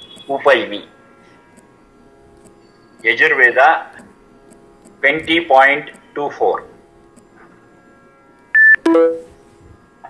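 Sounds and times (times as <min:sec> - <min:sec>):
electronic beep: 0:08.6 - 0:09.3.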